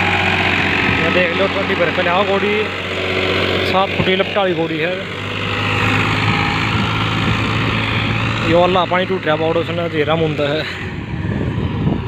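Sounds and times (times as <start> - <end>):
tractor diesel engine under load: 0.0 - 12.0.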